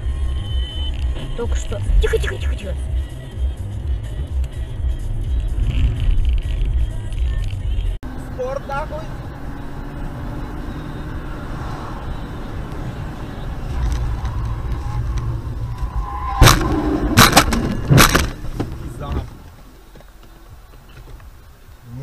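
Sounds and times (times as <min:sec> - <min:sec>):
car engine and road noise: 0:00.0 - 0:22.0
crash bangs: 0:14.8 - 0:18.9.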